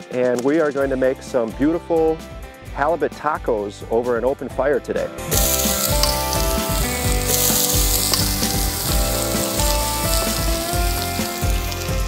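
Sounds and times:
fish sizzling in hot oil: 5.3s - 12.0s.

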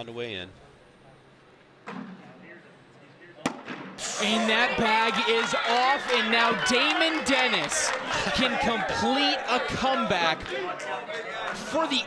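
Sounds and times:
crowd voices: 4.0s - 12.0s.

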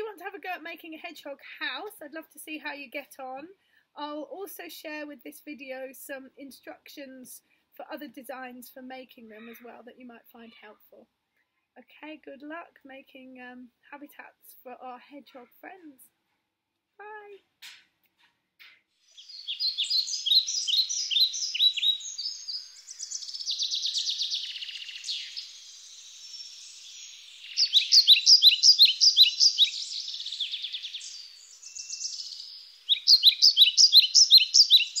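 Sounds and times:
songbird chirping and trilling: 19.0s - 35.0s.

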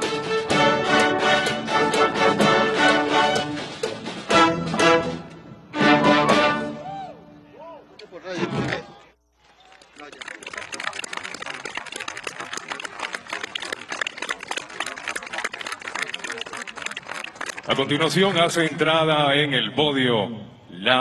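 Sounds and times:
orchestra playing: 0.0s - 6.9s
large crowd applauding: 9.3s - 18.3s.

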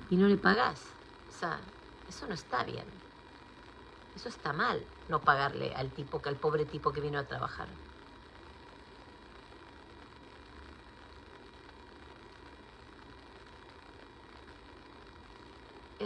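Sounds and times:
faint steady low hum: 0.0s - 16.0s.

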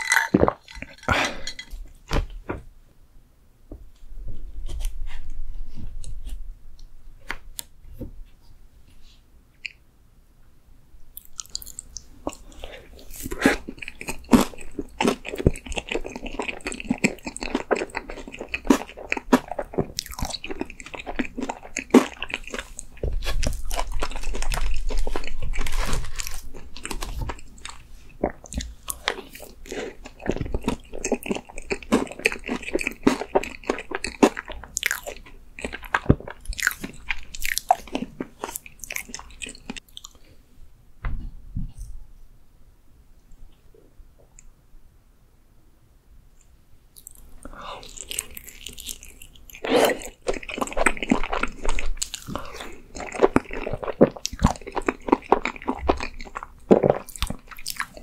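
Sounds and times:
mouth chewing and crunching: 11.2s - 40.3s, 46.9s - 58.0s.

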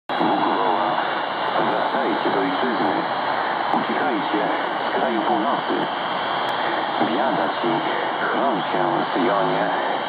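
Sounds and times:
radio voice speaking: 0.1s - 3.1s, 3.7s - 5.9s, 6.5s - 10.0s
radio hiss: 0.1s - 10.0s.

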